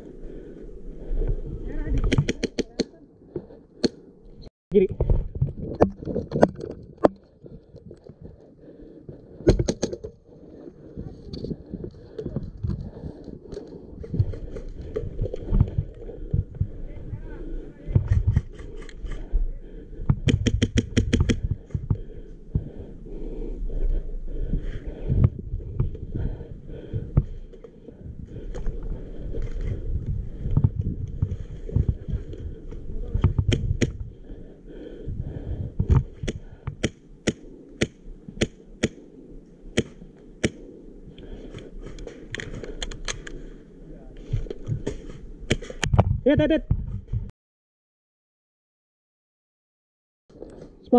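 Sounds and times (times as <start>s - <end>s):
low wind: 0.0s - 47.3s, 50.3s - 50.9s.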